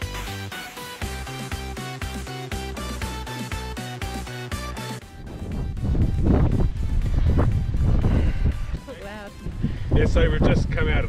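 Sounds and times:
wind buffeting microphone: 5.1 - 11.0.

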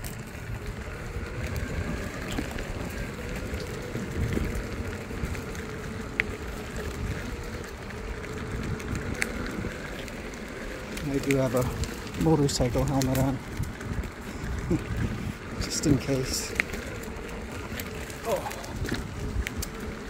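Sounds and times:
sharp clicks from bumps: 0.0 - 20.0
skateboard wheels rumbling on dirt: 0.0 - 20.0.

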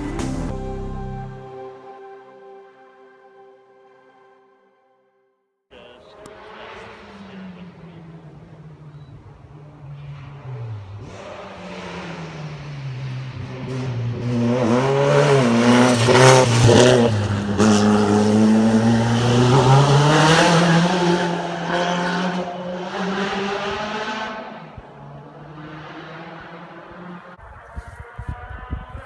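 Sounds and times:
race car engine at full throttle: 5.8 - 29.0.

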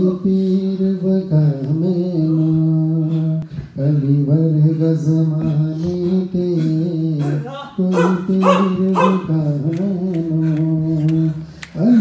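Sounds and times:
man singing devotional chant: 0.0 - 12.0.

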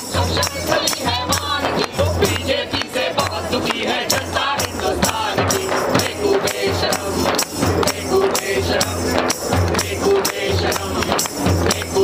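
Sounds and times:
frame drum beat: 0.0 - 12.0
men singing together: 0.0 - 12.0.

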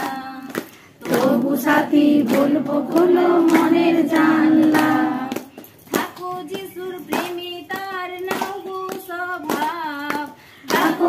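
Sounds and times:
hand claps: 0.0 - 11.0
voices singing devotional song: 0.0 - 11.0.

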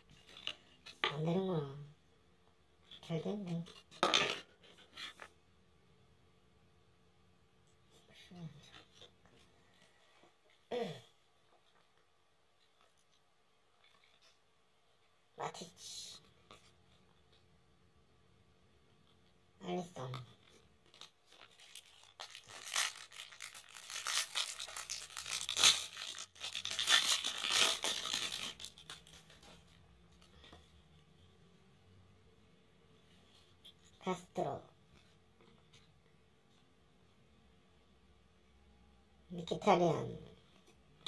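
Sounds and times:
trading cards rustling: 20.7 - 30.5
foil wrapper crinkling and tearing: 20.8 - 29.4.

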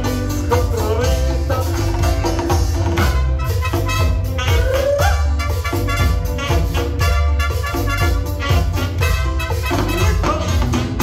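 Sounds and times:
drums: 0.0 - 11.0
electric bass: 0.0 - 11.0
trumpets and saxophones horn line: 2.0 - 11.0.

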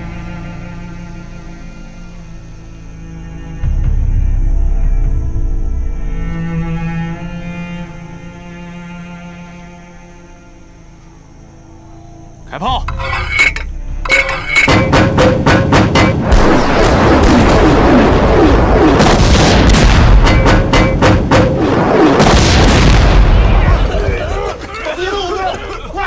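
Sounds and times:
gunshots: 14.2 - 24.2
gunfire: 14.7 - 23.9
explosions: 14.8 - 24.2
men shouting: 23.5 - 26.0.

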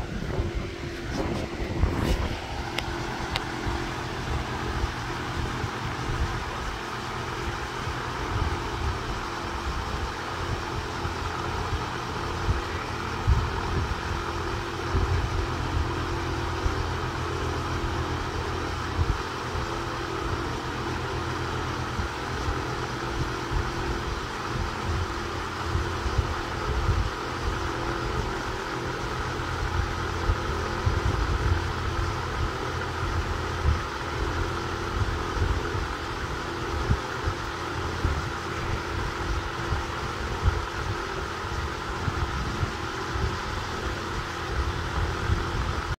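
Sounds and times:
low rumbling: 0.0 - 46.0
mechanical hum with held tone: 0.0 - 46.0.

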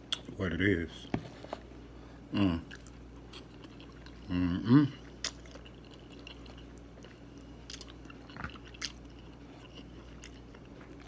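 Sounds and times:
person chewing food: 2.6 - 11.0.

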